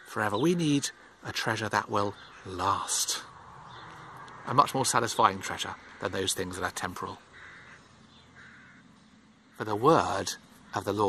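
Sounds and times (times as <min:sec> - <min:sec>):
bird short harsh calls: 0:05.2 - 0:08.9.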